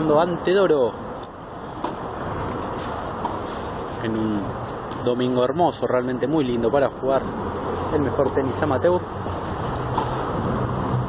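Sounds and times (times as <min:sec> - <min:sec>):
outdoor background noise: 0:00.0 - 0:11.0
racket hitting tennis ball: 0:01.7 - 0:03.9, 0:09.3 - 0:10.2.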